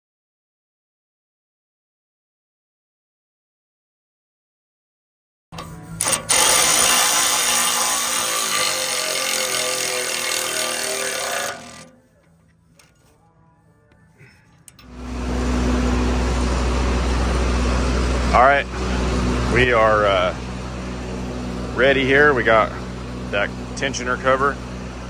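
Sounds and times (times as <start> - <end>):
power tool running bolt down: 5.6 - 12.0, 14.5 - 25.0
low engine hum: 11.8 - 25.0.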